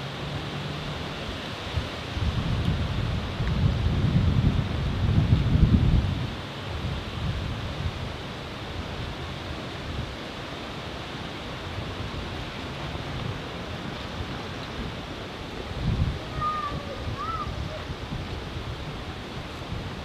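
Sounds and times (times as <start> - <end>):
steady outdoor hiss: 0.0 - 20.0
wind buffeting microphone: 0.6 - 20.0.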